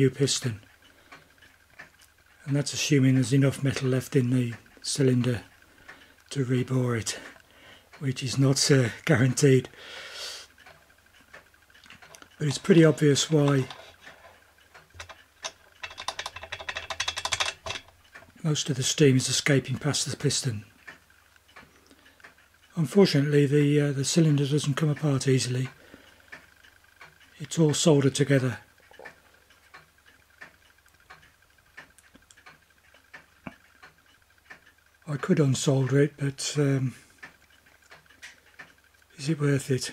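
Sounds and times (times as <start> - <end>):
toy steam engine clattering: 11.9 - 19.5.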